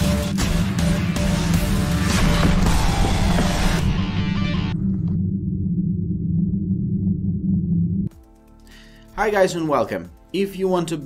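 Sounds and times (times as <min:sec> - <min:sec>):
low bass drone music: 0:00.0 - 0:09.2.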